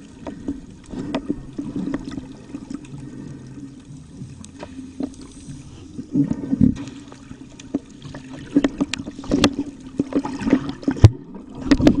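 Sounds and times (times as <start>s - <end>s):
water splashing and gurgling: 0.0s - 12.0s.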